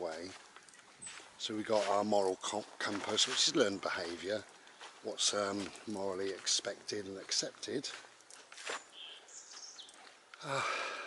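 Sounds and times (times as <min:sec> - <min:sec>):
high bird chirps: 0:08.7 - 0:10.1.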